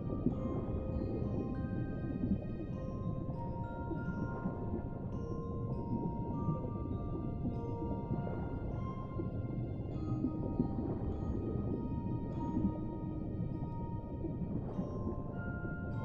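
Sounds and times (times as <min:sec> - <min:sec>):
deep underwater rumble: 0:00.0 - 0:16.0
music box lullaby: 0:00.2 - 0:11.4, 0:14.8 - 0:16.0.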